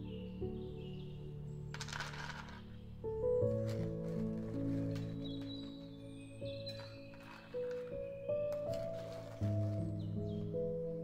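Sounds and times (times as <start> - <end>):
background music: 0.0 - 11.0
almonds clattering into glass: 1.7 - 2.7.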